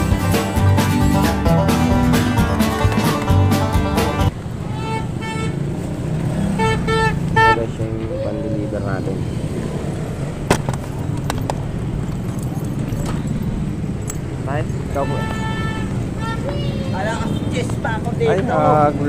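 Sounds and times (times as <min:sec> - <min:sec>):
street traffic rumble: 0:00.0 - 0:19.0
vehicle horn toots: 0:04.7 - 0:05.7, 0:06.4 - 0:07.9, 0:14.9 - 0:17.7.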